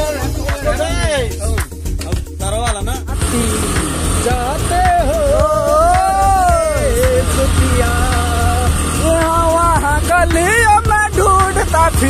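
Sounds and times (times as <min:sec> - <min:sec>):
song with held vocal melody: 0:00.0 - 0:12.0
motorcycle engine rumble: 0:03.0 - 0:12.0.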